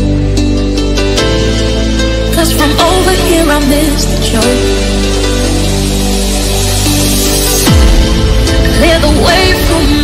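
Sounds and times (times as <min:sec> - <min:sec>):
music with deep bass and chords: 0:00.0 - 0:10.0.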